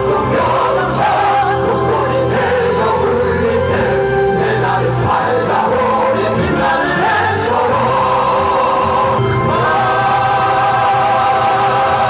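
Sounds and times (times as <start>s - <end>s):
amplified backing music: 0.0s - 12.0s
group of voices singing: 0.0s - 12.0s.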